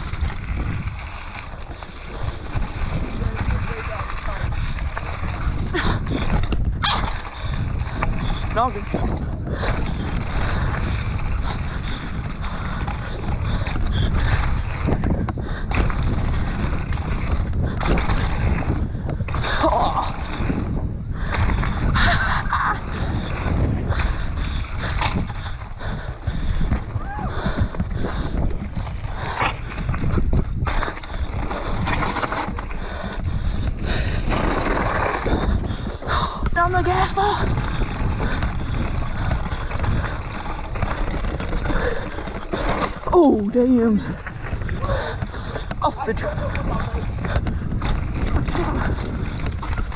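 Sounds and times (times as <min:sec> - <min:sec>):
bike rattling and knocking: 0:00.0 - 0:49.9
tyres on gravel: 0:00.0 - 0:49.9
wind buffeting microphone: 0:00.0 - 0:49.9.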